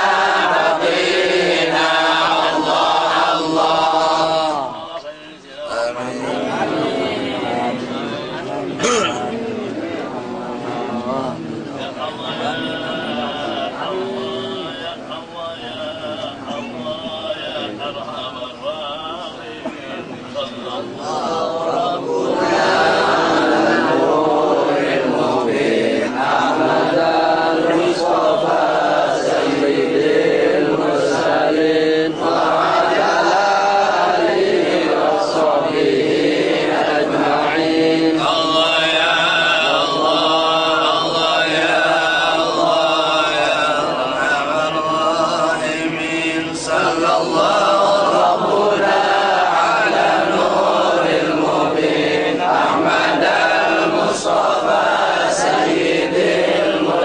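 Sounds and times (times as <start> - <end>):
men chanting together: 0.0 - 57.0.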